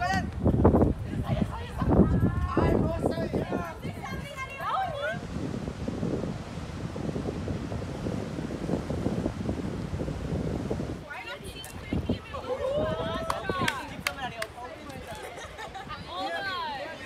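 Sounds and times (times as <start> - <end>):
wind buffeting microphone: 0.0 - 17.0
people talking: 1.1 - 5.2, 11.0 - 17.0.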